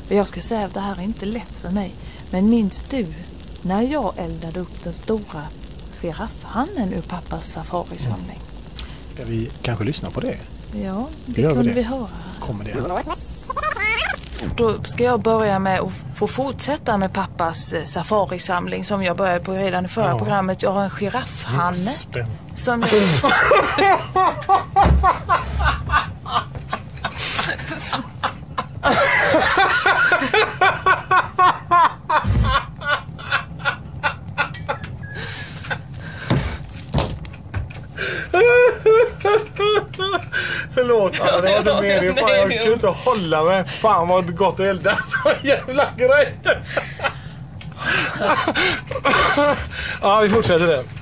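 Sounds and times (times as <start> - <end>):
low steady hum: 0.0 - 51.0
person speaking: 7.8 - 14.7, 21.1 - 23.3
person laughing: 12.8 - 14.2, 22.8 - 35.9, 38.0 - 40.4, 44.9 - 49.7
person laughing breathily: 25.3 - 28.3, 35.0 - 36.2, 46.5 - 50.0.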